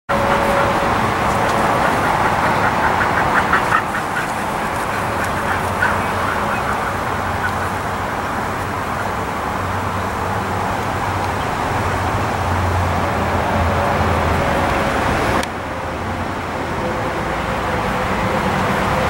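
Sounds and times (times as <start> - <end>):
rapid bird calls: 0.1 - 9.3
outdoor background noise: 0.1 - 19.0.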